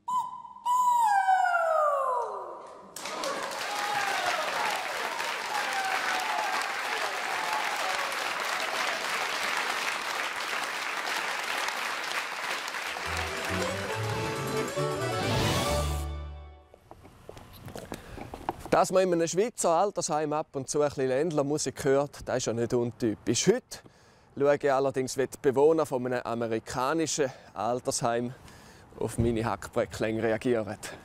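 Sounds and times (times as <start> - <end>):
audience applauding: 3.0 - 15.5
short music jingle: 13.0 - 16.6.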